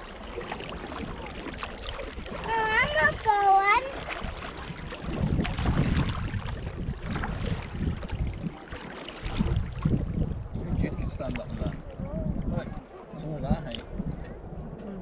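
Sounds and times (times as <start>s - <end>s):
paddle splashing in water: 0.0s - 14.0s
water lapping at hull: 0.0s - 15.0s
wind on microphone: 0.0s - 15.0s.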